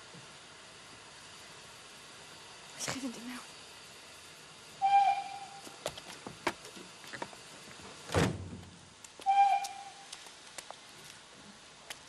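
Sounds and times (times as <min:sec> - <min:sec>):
train whistle blasts: 0:04.8 - 0:05.6, 0:09.2 - 0:10.1
carriage door slamming: 0:08.1 - 0:08.6.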